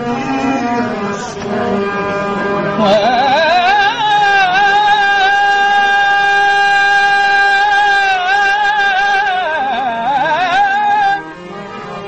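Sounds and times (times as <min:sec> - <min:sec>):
harmonium drone: 0:00.0 - 0:12.0.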